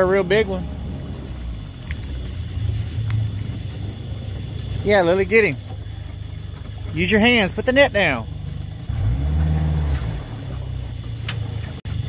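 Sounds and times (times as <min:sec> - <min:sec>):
boat motor idling: 0:00.0 - 0:12.0.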